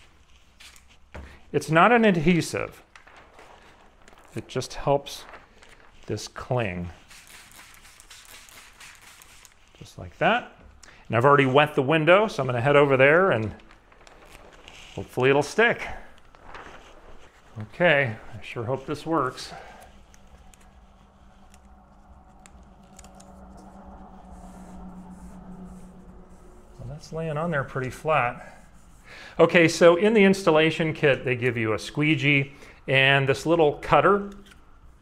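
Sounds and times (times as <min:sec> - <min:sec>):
spray bottle spritzes: 0:07.0 - 0:09.6
steady low hum: 0:09.0 - 0:30.2.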